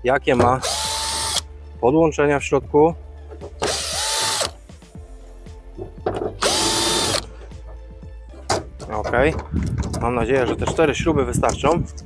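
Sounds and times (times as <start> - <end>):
drill-driver whining: 0.4 - 1.5, 3.6 - 4.6, 6.4 - 7.3.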